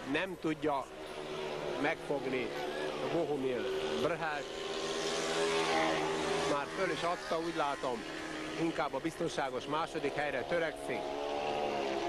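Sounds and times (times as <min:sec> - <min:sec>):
motorcycles racing buzzing drone: 0:00.0 - 0:12.0.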